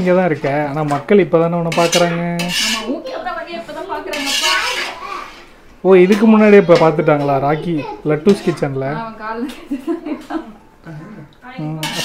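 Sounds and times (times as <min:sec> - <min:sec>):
metal spoon scraping steel pot: 0:01.6 - 0:03.0, 0:04.0 - 0:05.5, 0:11.8 - 0:12.0.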